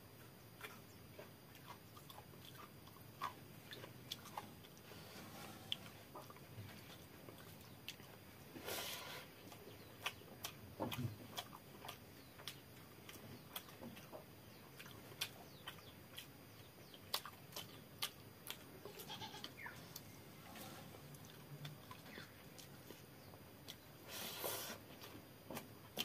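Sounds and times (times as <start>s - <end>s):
lip smacks and chewing: 0.1s - 8.4s, 9.3s - 26.0s.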